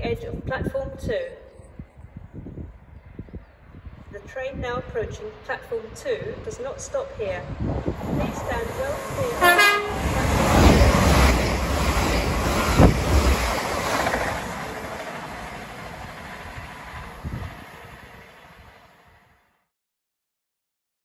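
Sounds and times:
train rushing past: 0:04.6 - 0:19.4
two-tone train horn: 0:09.3 - 0:10.2.

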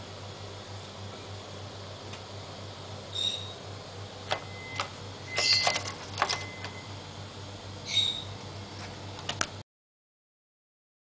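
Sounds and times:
bird chirp: 0:03.1 - 0:03.6, 0:07.8 - 0:08.3.

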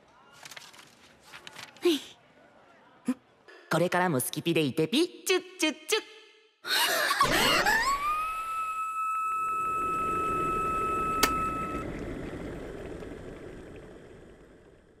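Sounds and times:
kettle whistle: 0:07.7 - 0:11.9
water boiling: 0:09.5 - 0:15.0.

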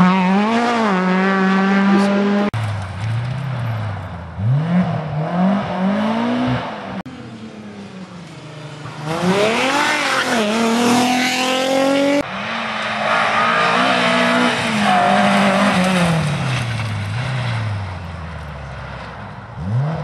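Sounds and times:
rally car engine revving: 0:00.0 - 0:07.1, 0:07.7 - 0:19.0, 0:19.6 - 0:20.0.

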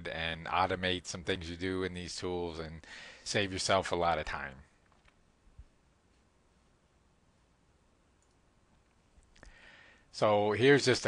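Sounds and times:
faint clicks: 0:08.2 - 0:09.6.

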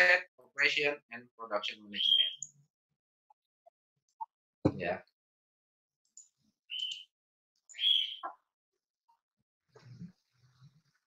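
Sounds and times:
bird chirping: 0:01.9 - 0:02.7, 0:06.2 - 0:08.5.

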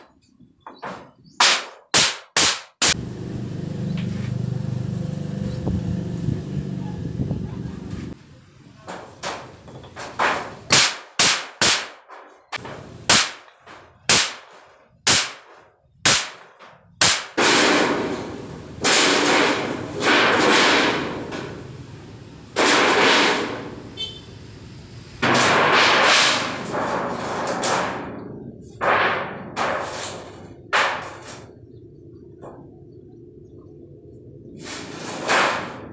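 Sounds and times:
hammer striking sheet metal: 0:01.4 - 0:03.0, 0:08.9 - 0:21.8, 0:22.6 - 0:24.0, 0:25.2 - 0:31.5, 0:34.9 - 0:35.9
sheet metal rattling and scraping: 0:08.8 - 0:10.8, 0:12.0 - 0:21.8, 0:25.2 - 0:31.7, 0:34.5 - 0:35.9.

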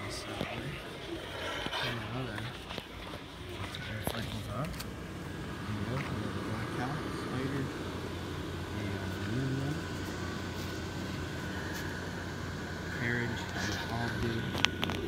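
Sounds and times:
electric blower fans humming: 0:00.0 - 0:15.0
faint voices: 0:00.0 - 0:15.0.

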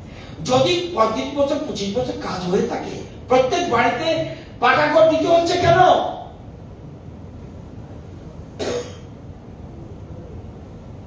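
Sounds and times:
low room hum: 0:00.0 - 0:11.0
person coughing: 0:08.6 - 0:09.2.

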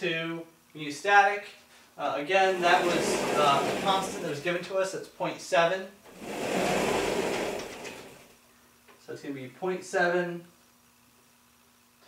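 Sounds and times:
whiteboard panel rolling on track: 0:02.4 - 0:04.6, 0:06.1 - 0:08.4.

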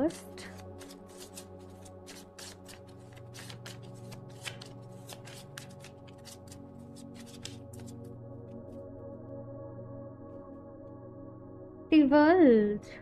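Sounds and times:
soft background music: 0:00.0 - 0:13.0
cards being shuffled: 0:00.1 - 0:08.1.

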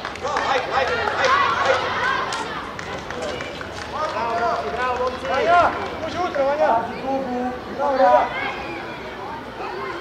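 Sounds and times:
open-air background hum: 0:00.0 - 0:10.0
voices calling and shouting: 0:00.2 - 0:10.0.

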